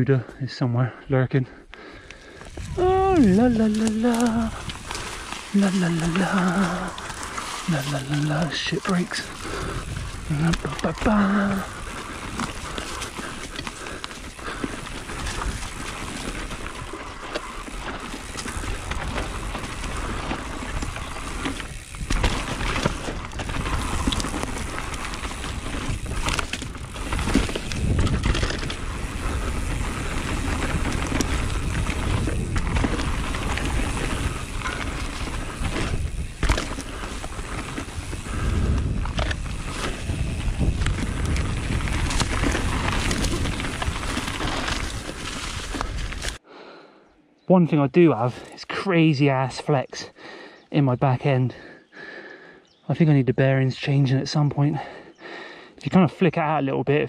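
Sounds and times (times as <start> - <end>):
bike tyre rush on dirt trail: 1.4 - 46.5, 47.8 - 52.6, 53.6 - 56.9
bike knocks and clatters: 18.0 - 38.3.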